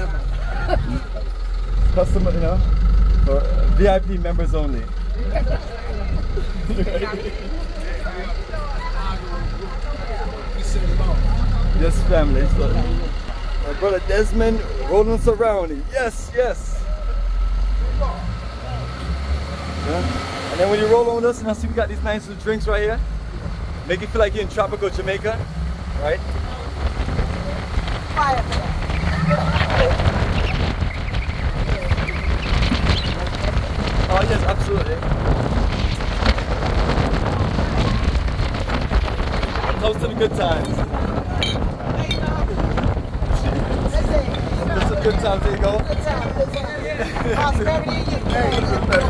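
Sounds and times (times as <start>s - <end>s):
passengers laughing and chattering: 0.0s - 19.2s, 20.6s - 49.0s
truck engine rumbling: 0.0s - 49.0s
wind buffeting microphone: 23.3s - 49.0s.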